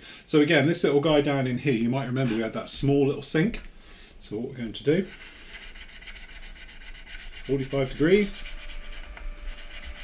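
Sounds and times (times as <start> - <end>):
sanding stick rubbing plastic: 4.8 - 10.0.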